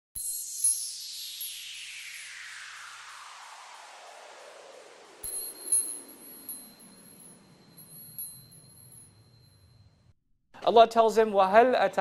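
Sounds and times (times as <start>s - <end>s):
sparkling chime strikes: 0.2s - 2.8s, 5.2s - 9.8s
thin steady high tone: 0.2s - 10.1s
descending pitch sweep: 0.4s - 8.3s.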